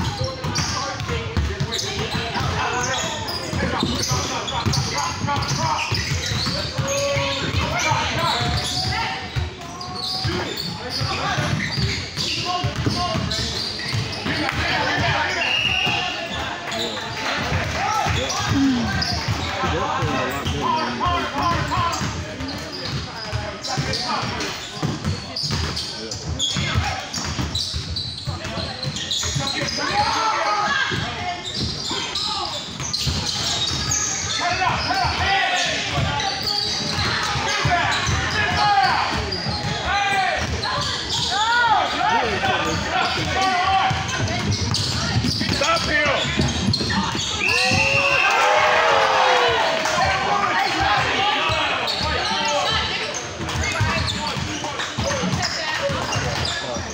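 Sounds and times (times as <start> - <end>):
basketball bouncing on court: 0.0 - 15.1, 21.4 - 29.8, 42.6 - 48.0
sneakers squeaking: 0.0 - 56.9
referee's whistle: 15.3 - 16.2, 47.2 - 48.4
people calling out: 18.1 - 21.2.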